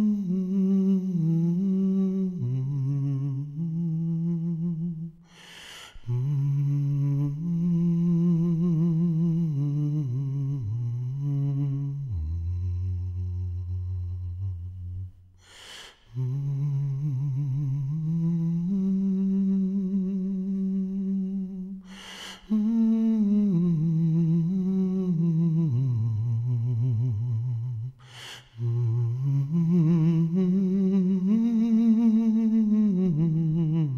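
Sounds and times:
deep breaths: 5.2 - 6.1, 15.4 - 16.4, 21.8 - 22.8, 28.0 - 28.7
man humming: 16.1 - 33.9.

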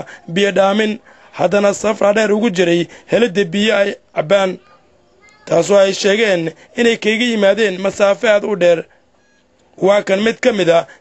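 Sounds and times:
person speaking: 0.0 - 8.9.

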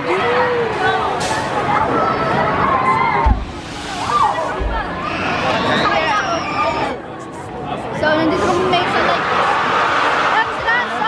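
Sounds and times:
people talking: 10.3 - 11.0.

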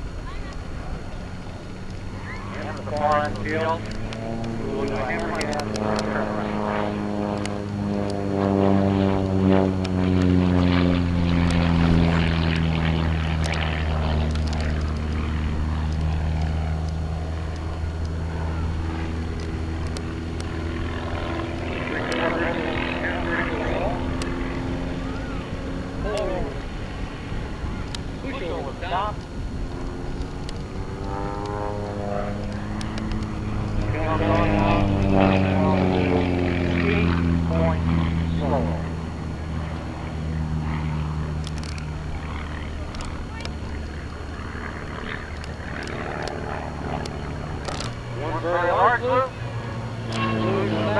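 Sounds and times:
light plane engine droning overhead: 0.0 - 50.9.

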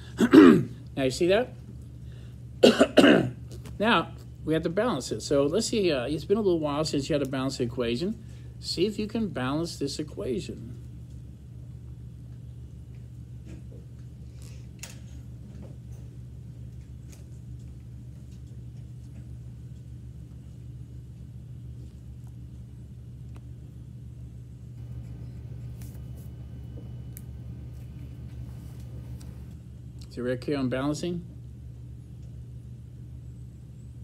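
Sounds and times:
low room hum: 0.0 - 34.0.

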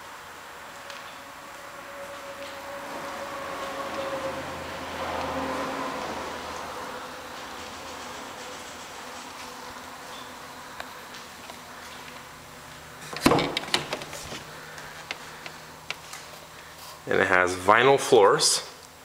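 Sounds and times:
mechanical hum with whine: 0.0 - 19.0.

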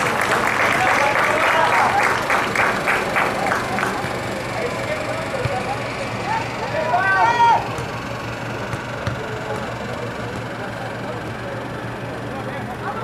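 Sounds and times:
players shouting: 0.0 - 12.9
steady low hum: 0.0 - 13.0.

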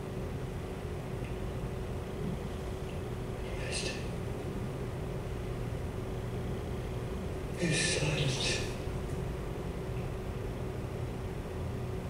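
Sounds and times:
faint hum: 0.0 - 12.0
low room rumble: 0.0 - 12.0.

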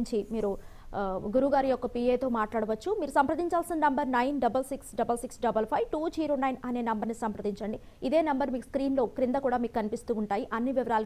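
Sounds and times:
woman speaking: 0.0 - 11.0.

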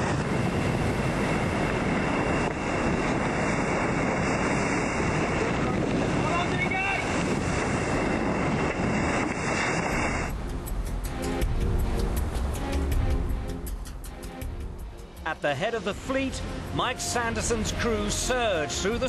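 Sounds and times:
rushing water and spray: 0.0 - 19.0
wind buffeting microphone: 0.0 - 19.0.

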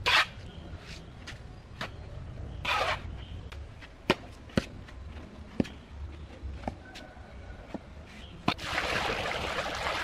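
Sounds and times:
shovel scraping sand and cement: 0.0 - 1.0, 2.6 - 3.1.

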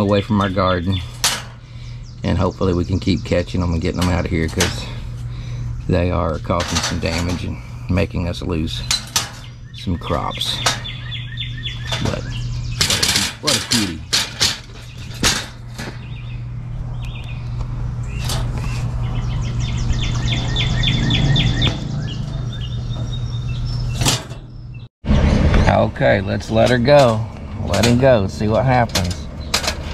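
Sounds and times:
steady low hum: 0.0 - 29.9
chipmunk chirping: 9.4 - 13.0.

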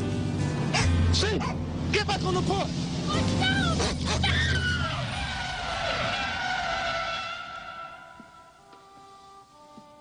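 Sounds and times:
car engine hum: 0.0 - 8.8
car tyres screeching: 3.1 - 8.7.

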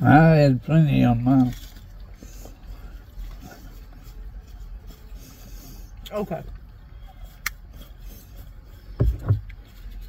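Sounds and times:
people chewing food: 0.8 - 10.0
car cabin hum: 8.9 - 9.8.

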